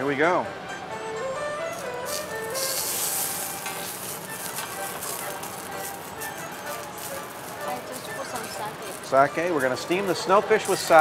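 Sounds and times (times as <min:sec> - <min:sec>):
fish sizzling on a griddle: 0:01.8 - 0:11.0.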